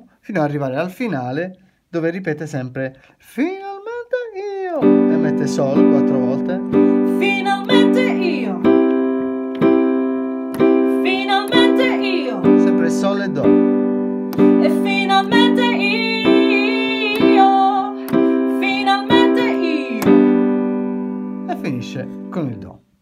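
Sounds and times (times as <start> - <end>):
person singing: 3.5 - 8.8, 10.9 - 13.1, 14.3 - 20.4
digital piano chord: 4.8 - 22.8.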